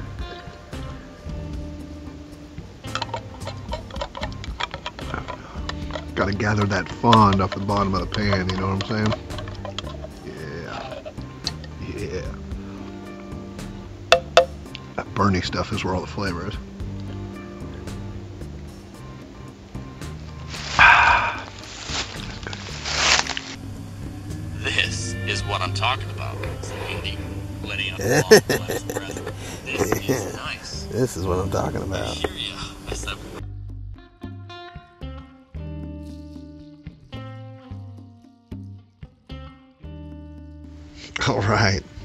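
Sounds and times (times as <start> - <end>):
background music low held notes: 0.0 - 42.0
man slurping soup: 20.6 - 21.7.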